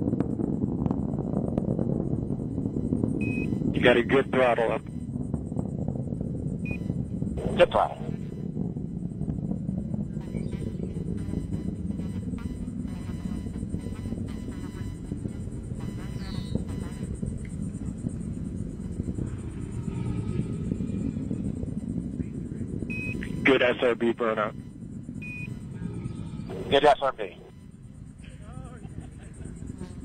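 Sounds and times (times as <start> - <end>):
rocket engines low rumble: 0.0 - 30.0.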